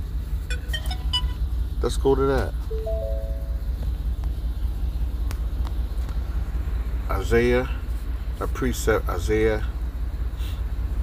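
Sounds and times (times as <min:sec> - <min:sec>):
short flat tones: 0:02.7 - 0:03.7
steady low hum: 0:02.7 - 0:07.1.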